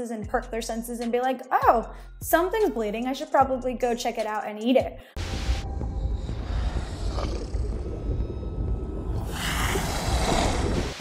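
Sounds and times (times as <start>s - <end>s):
deep rumbling film score: 5.2s - 11.0s
hiss: 9.3s - 11.0s.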